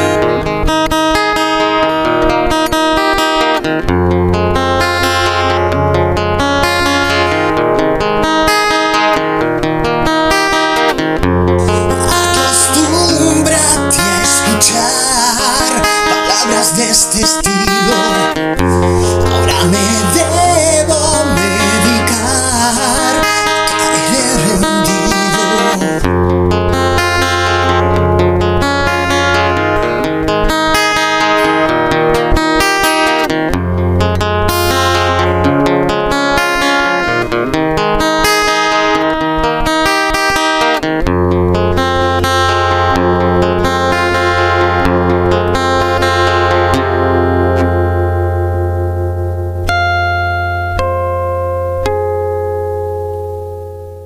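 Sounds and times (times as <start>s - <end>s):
guitar picking: 0.0s - 54.0s
steady low bass: 11.5s - 27.0s.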